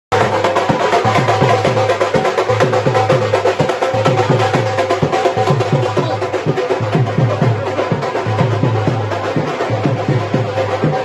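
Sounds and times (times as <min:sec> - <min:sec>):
drums beaten in fast rhythm: 0:00.1 - 0:11.0.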